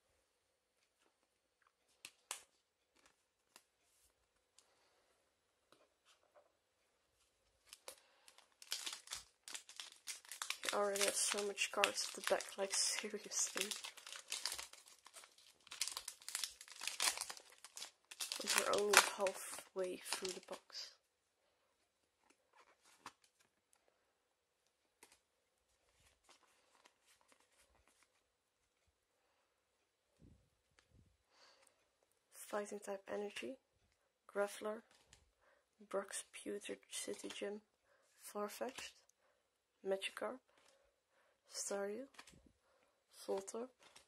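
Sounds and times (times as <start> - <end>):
trading cards being shuffled: 7.6 - 20.7
foil wrapper crinkling and tearing: 7.6 - 20.8.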